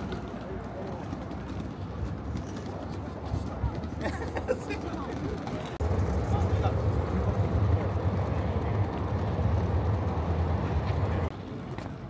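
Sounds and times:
low vehicle engine rumble: 0.0 - 11.7
chatter of passers-by: 0.0 - 12.0.

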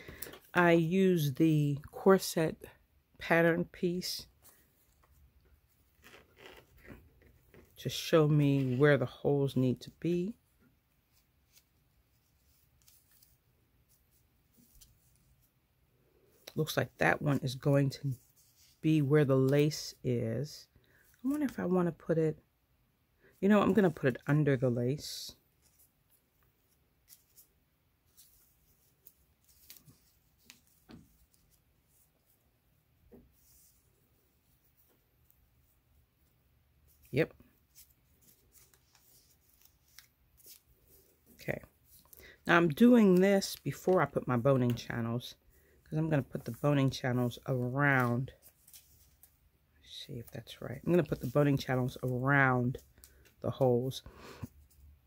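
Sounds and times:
paper and fabric rustling: 9.8 - 15.6, 16.2 - 20.0, 23.6 - 53.6.

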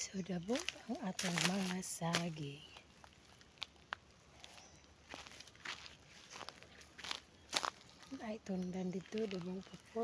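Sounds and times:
footsteps through undergrowth: 0.4 - 10.0.

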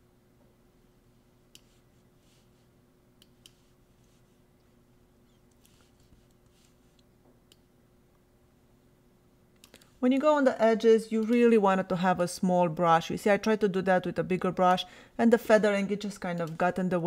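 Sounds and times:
computer mouse clicks: 1.5 - 1.8, 3.2 - 3.6, 9.6 - 9.9.

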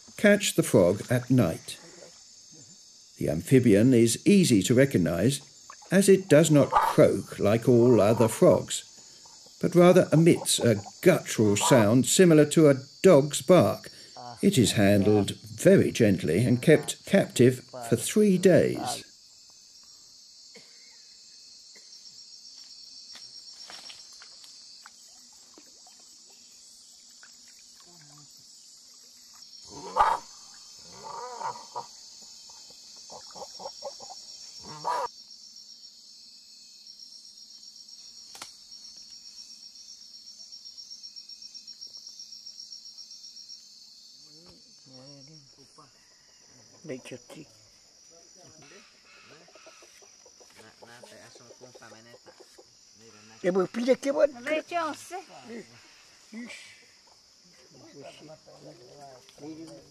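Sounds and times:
insect chorus buzzing trill: 0.0 - 59.9
short loud animal calls: 29.7 - 30.3.

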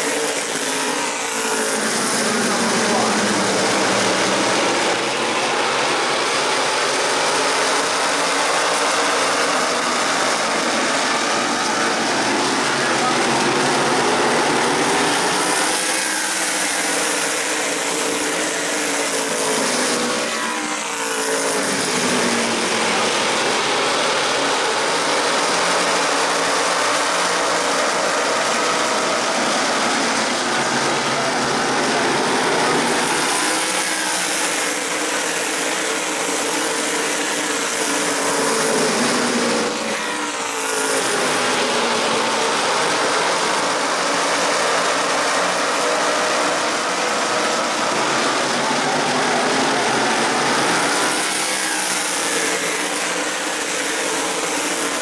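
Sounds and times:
race car engines at full throttle: 0.0 - 55.0.

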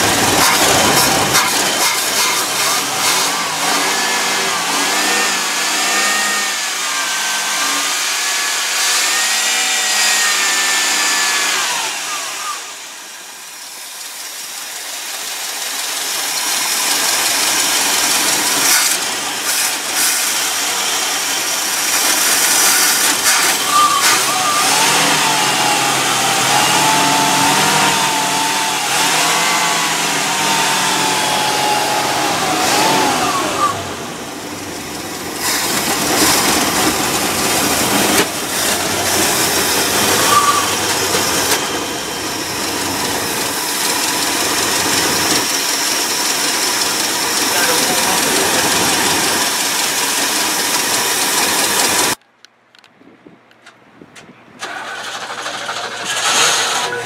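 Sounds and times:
misfiring car engine revving: 0.0 - 52.2, 54.6 - 57.0.

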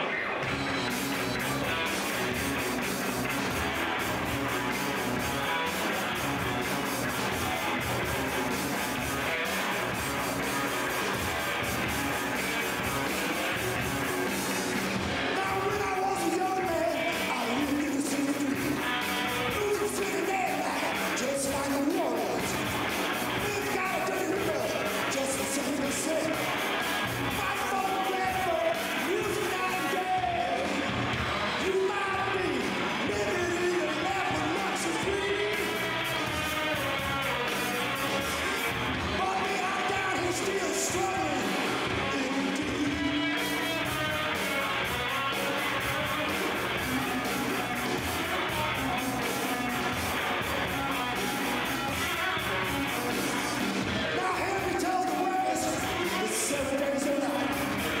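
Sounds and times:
bass guitar: 0.0 - 58.0
drums: 0.0 - 58.0
electric guitar: 0.0 - 58.0
man singing: 15.2 - 22.6, 23.3 - 26.7, 27.3 - 30.9, 31.5 - 36.8, 37.4 - 44.0, 46.0 - 58.0.

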